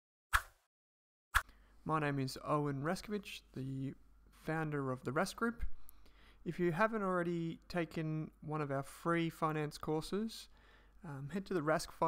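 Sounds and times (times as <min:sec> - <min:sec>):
man speaking: 0:01.8 - 0:05.8, 0:06.4 - 0:12.0.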